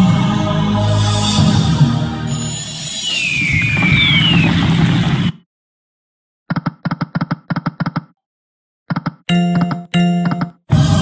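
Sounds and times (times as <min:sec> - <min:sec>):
electronic win jingle: 0:09.3 - 0:10.5.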